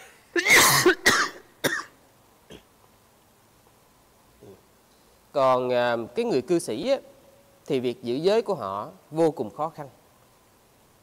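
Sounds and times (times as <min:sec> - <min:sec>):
man coughing: 0:00.0 - 0:02.7.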